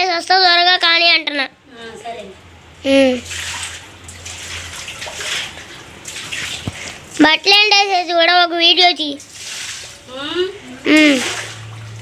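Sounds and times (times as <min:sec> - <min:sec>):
water splashing on concrete: 0:03.0 - 0:12.0.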